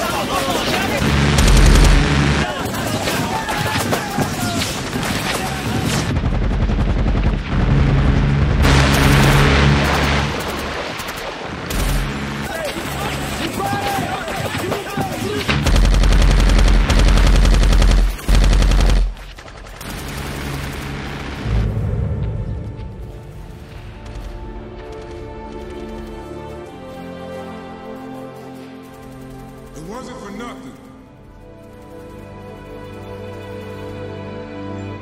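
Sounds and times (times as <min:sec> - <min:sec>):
machine gun fire: 0:00.5 - 0:21.5.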